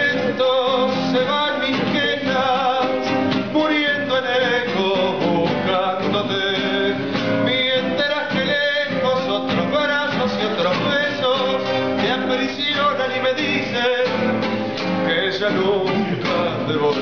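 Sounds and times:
classical guitars strummed and plucked: 0.0 - 17.0
man singing with vibrato: 0.0 - 17.0.

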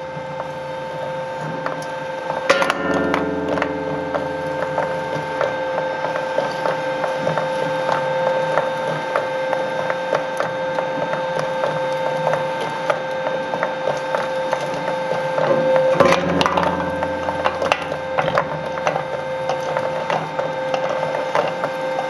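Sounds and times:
metal crunching: 2.5 - 6.1, 15.9 - 19.8.

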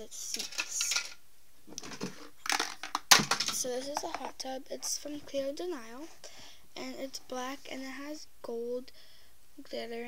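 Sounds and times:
plastic pieces clicking and rattling: 0.2 - 1.2, 1.8 - 4.3.

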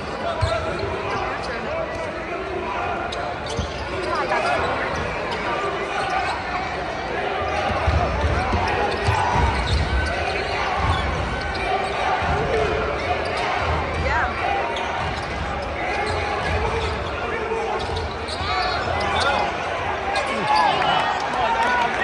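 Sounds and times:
sneaker squeaks on floor: 0.0 - 2.1, 3.0 - 6.8, 7.5 - 20.8
chatter of players and spectators: 0.0 - 22.0.

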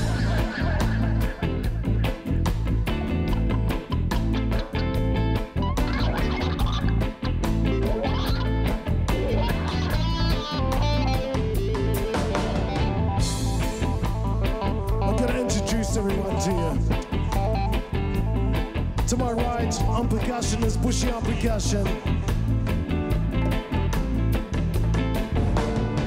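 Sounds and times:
electric guitar: 0.0 - 26.0
live reggae band: 0.0 - 26.0.

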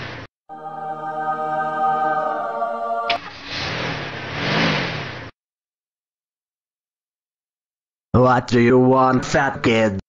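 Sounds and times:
short music: 0.5 - 3.4.

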